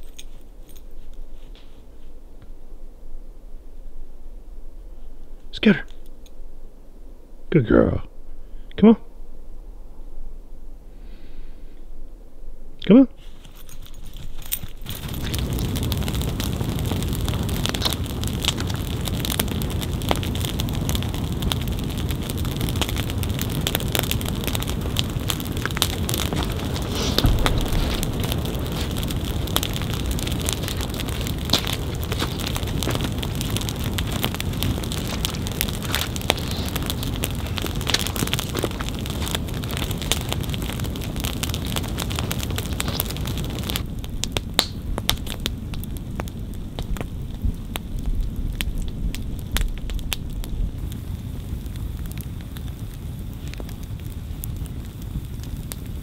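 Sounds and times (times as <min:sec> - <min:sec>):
campfire crackling and popping: 0:13.6 - 0:56.0.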